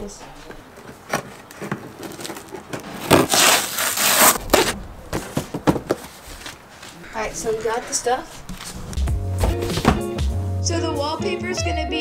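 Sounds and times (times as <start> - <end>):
cardboard flaps clicking and scuffing: 0.9 - 7.0, 8.4 - 10.2
blade slitting packing tape: 2.9 - 4.8.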